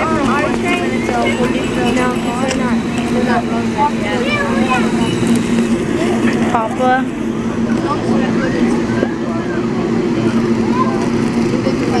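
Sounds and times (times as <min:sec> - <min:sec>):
crowd chattering: 0:00.0 - 0:12.0
idling train hum: 0:00.0 - 0:12.0.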